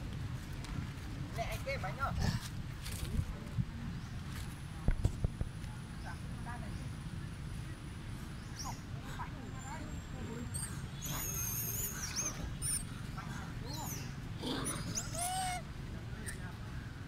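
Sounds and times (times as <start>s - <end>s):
monkeys squeaking and squealing: 10.3s - 16.5s.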